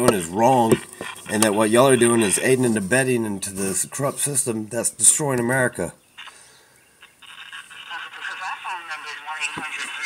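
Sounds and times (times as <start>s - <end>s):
person speaking through phone speaker: 0.0s - 4.2s, 7.3s - 10.0s.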